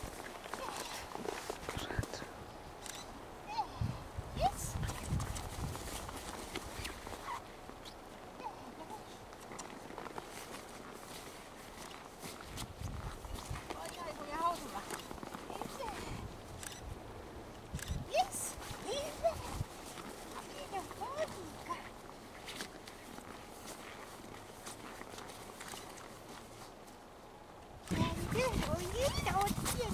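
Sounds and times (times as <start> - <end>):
crunching steps in snow: 0.0 - 2.1, 4.4 - 8.0, 8.9 - 16.2, 18.2 - 27.0, 28.0 - 29.9
footfalls on snow: 0.0 - 2.1, 4.4 - 7.8, 28.0 - 29.9.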